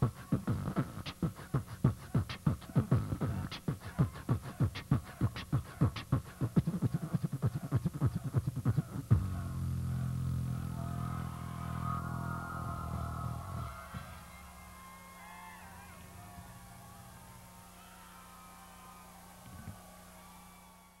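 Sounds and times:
steady hum: 0:00.0 - 0:20.8
low bass note: 0:09.1 - 0:14.3
crowd cheering and screaming: 0:10.5 - 0:21.0.

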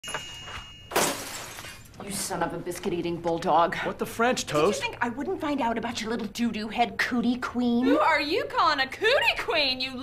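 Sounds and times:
glass breaking: 0:00.9 - 0:02.0.

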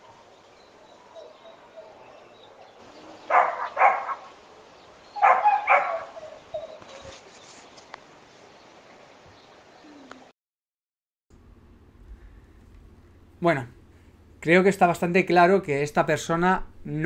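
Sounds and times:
dog barking: 0:03.3 - 0:04.3, 0:05.2 - 0:06.9
dog whimpering: 0:05.2 - 0:07.0.

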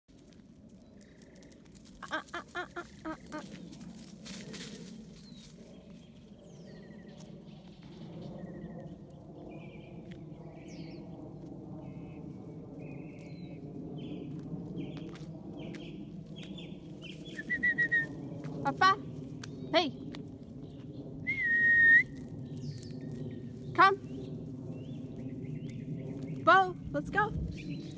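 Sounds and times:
short pitched vocal calls: 0:02.0 - 0:03.5
long whistled note: 0:17.3 - 0:18.2, 0:21.2 - 0:22.3.

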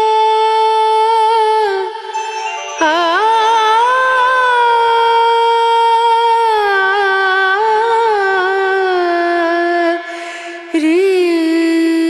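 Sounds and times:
woman singing a high held note: 0:00.0 - 0:06.6.

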